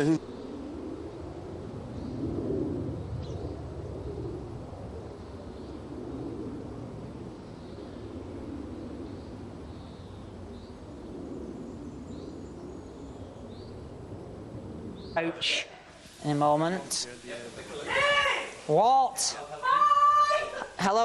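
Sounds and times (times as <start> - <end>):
steady low background noise: 0.0 - 21.0.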